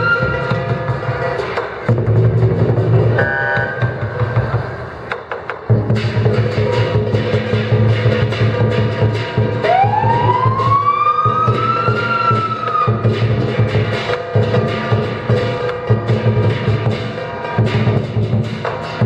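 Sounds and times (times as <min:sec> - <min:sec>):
large drum beating: 0:00.0 - 0:04.8, 0:05.6 - 0:19.0
cymbals clashing: 0:00.0 - 0:05.0, 0:05.6 - 0:19.0.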